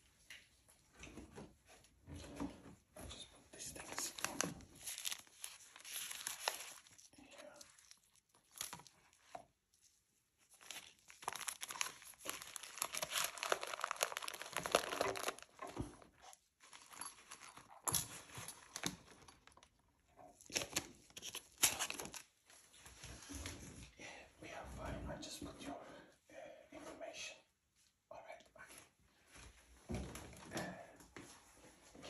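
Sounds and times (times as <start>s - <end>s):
plastic and paper crinkling: 3.6s - 23.6s.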